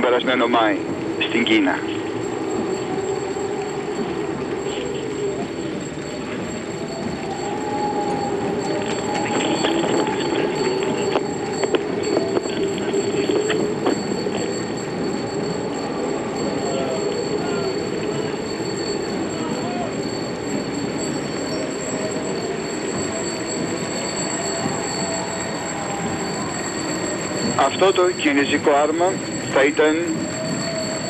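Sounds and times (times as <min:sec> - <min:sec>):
faint wavering tones: 0:00.0 - 0:31.0
procession crowd voices: 0:00.0 - 0:31.0.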